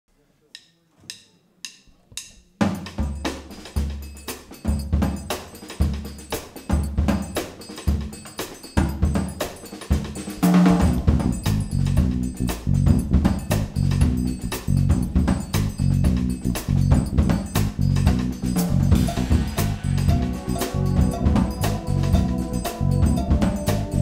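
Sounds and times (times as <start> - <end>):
drum kit groove: 0.6 - 24.0
jazz-funk band playing: 3.3 - 24.0
electric bass: 10.8 - 24.0.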